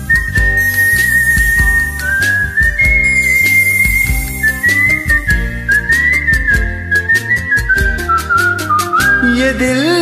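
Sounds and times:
man whistling a melody: 0.0s - 9.4s
karaoke backing track with beat: 0.0s - 10.0s.

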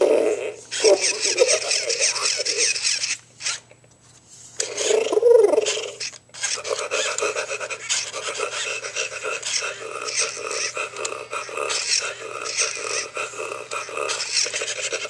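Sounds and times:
robotic toy dinosaur growls: 0.0s - 2.8s, 4.6s - 15.0s.

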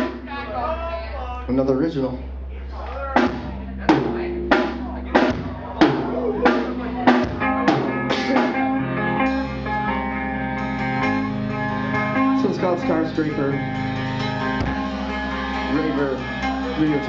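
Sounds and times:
live rock band playing: 0.0s - 0.6s, 3.2s - 17.0s
accented drum and guitar hits: 3.2s - 9.9s, 10.6s - 17.0s.

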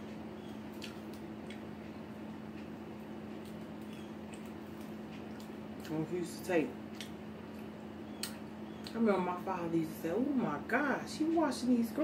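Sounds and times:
chewing and lip smacking: 0.0s - 6.0s, 6.8s - 9.0s
steady low hum: 0.0s - 12.0s.

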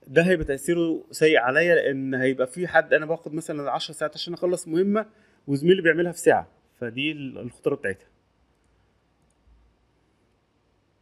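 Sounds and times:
faint clicks: 8.5s - 9.6s.

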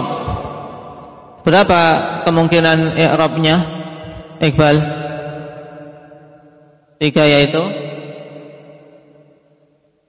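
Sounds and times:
man's voice echoing: 0.0s - 9.5s.

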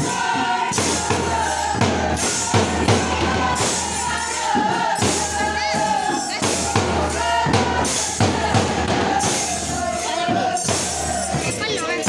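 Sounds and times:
voices singing together: 0.0s - 12.0s
hand drum beating: 0.7s - 12.0s.

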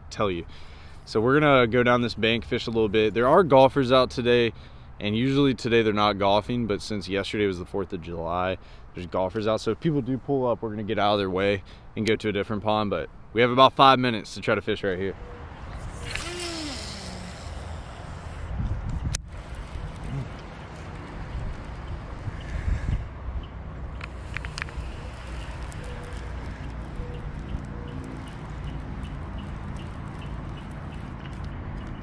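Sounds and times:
wind buffeting microphone: 15.4s - 29.8s.

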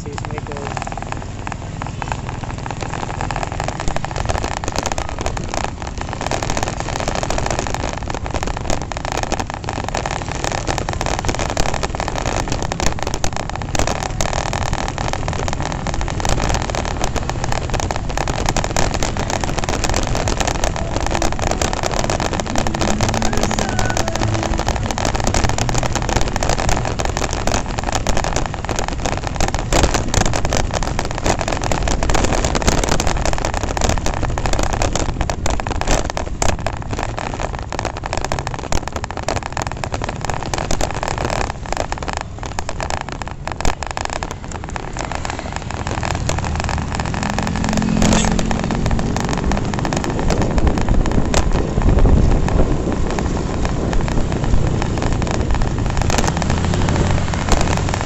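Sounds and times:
wind and road noise: 0.0s - 58.0s
motorcycle engine running: 19.1s - 27.8s, 45.1s - 51.1s.

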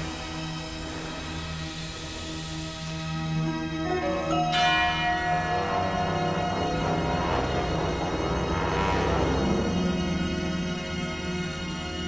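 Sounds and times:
orchestral music held tones: 0.0s - 12.0s
bell-like percussion stroke ringing: 3.9s - 9.0s.

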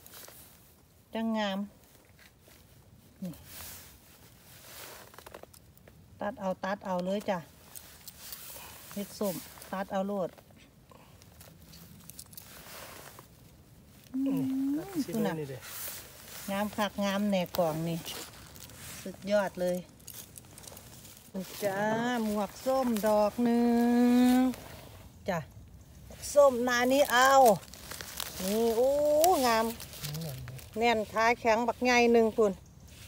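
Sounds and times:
person speaking: 14.1s - 20.3s, 21.2s - 24.6s, 28.3s - 32.6s.

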